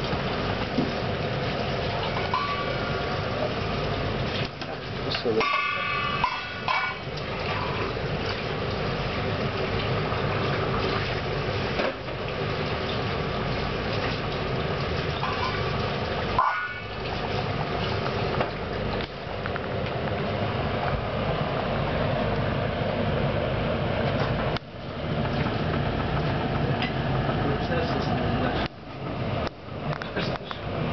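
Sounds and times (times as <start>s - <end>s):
water boiling and bubbling: 0.0s - 30.9s.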